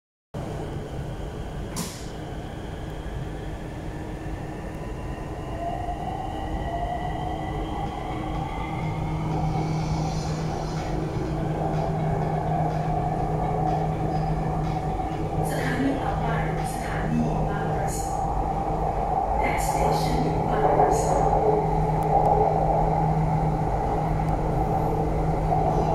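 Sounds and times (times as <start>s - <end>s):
train wheels rumbling on rail: 0.4s - 3.3s, 7.8s - 25.9s
sharp click: 1.7s - 2.2s.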